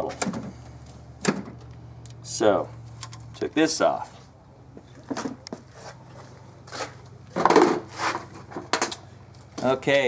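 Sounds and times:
steady low hum: 0.0s - 10.0s
rubbing scrape: 5.7s - 7.0s, 7.8s - 8.5s.

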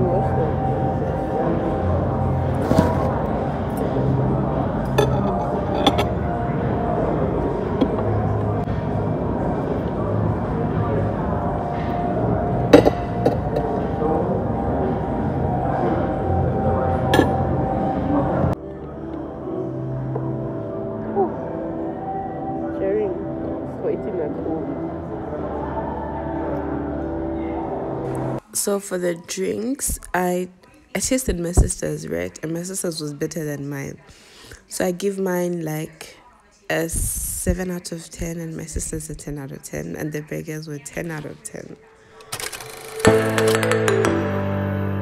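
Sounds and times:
background music: 0.0s - 30.4s, 42.2s - 45.0s
indistinct chatter: 0.0s - 44.2s.

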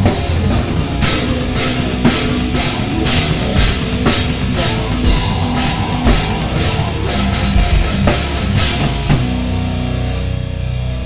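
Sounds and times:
rapid kick drum: 0.0s - 9.7s
cymbal crashes: 0.0s - 10.0s
heavy rock band playing: 0.0s - 11.0s.

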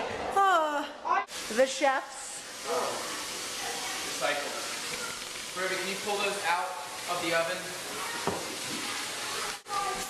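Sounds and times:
food sizzling in a frying pan: 1.2s - 10.0s
faint voices: 6.7s - 10.0s.

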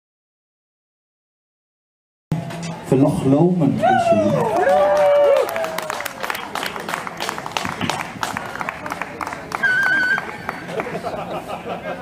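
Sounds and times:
audience applause: 4.2s - 11.5s.

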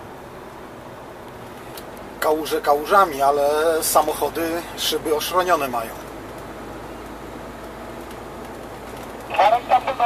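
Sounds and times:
truck engine and road noise: 0.0s - 10.0s.

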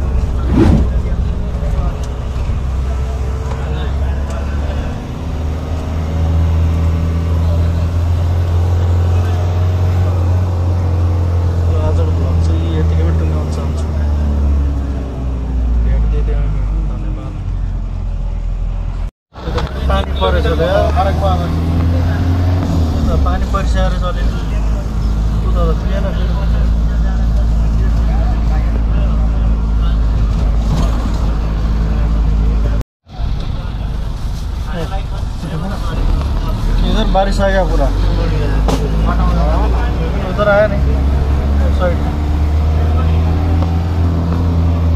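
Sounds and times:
bus engine and road drone: 0.0s - 44.9s
voices: 19.4s - 44.9s.

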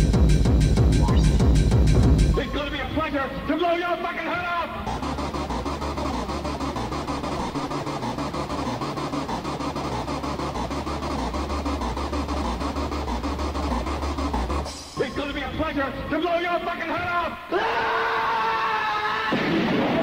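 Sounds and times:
hardcore techno with distorted beat: 0.0s - 19.1s.

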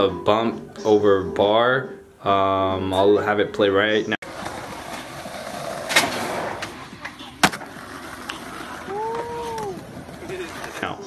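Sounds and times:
skateboard wheels rolling on asphalt: 4.2s - 11.0s
skateboard clacking on ground: 4.3s - 11.0s.

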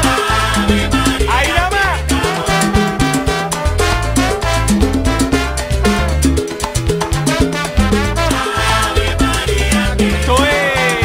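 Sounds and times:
instrumental salsa music: 0.0s - 11.0s.

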